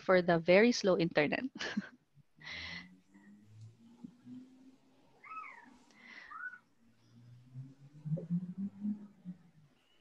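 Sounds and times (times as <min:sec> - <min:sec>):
faint high-pitched cry: 0:05.2 - 0:06.6.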